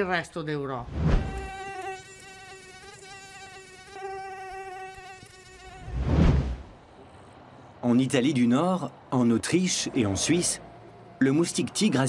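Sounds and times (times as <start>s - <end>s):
mosquito whine: 1.1s - 6.2s.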